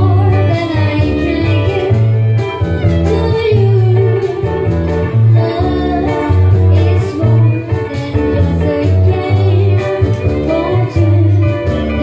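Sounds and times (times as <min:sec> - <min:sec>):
cajon: 0:00.0 - 0:12.0
low bass notes: 0:00.0 - 0:12.0
plucked strings: 0:00.0 - 0:12.0
violin: 0:00.0 - 0:12.0
woman singing into microphone: 0:00.0 - 0:12.0.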